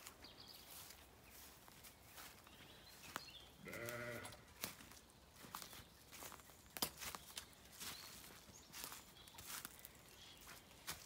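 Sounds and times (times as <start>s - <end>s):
sheep bleating: 3.6s - 4.4s.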